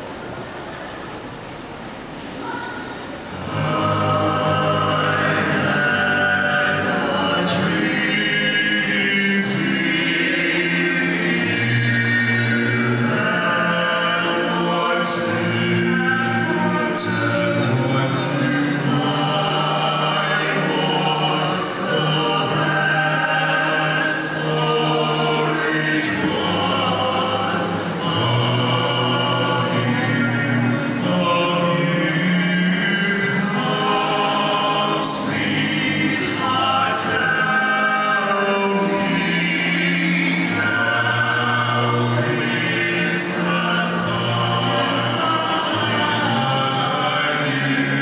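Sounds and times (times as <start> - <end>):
male vocal quartet singing: 3.3 - 48.0.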